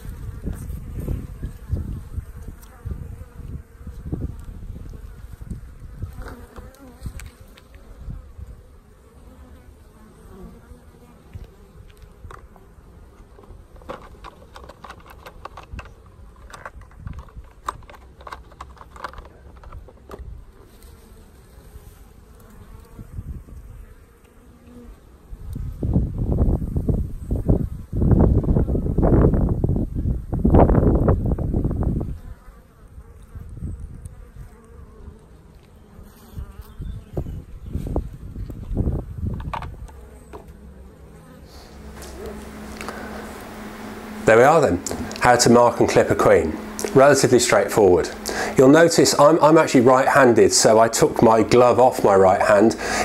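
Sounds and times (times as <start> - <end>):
honeybees buzzing: 0.0 - 16.5, 19.4 - 29.2, 31.2 - 53.0.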